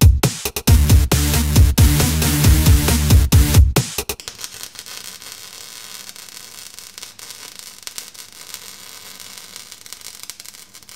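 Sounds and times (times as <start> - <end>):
loud electronic music: 0.0 - 4.2.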